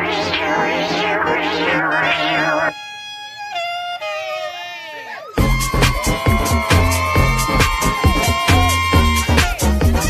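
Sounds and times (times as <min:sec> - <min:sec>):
synth with pulsing filter sweep: 0:00.0 - 0:02.7.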